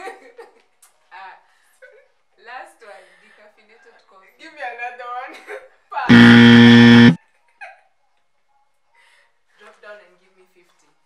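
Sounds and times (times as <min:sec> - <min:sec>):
wrong-answer buzzer: 0:06.1 - 0:07.2.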